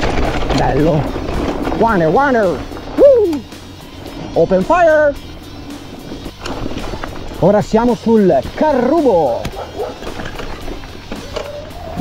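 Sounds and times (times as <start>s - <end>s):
bike tyres on dirt trail: 0.0s - 12.0s.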